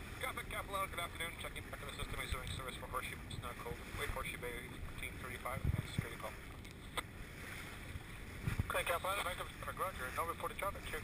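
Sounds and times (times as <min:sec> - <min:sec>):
water: 0:00.0 - 0:11.0
wind: 0:00.0 - 0:11.0.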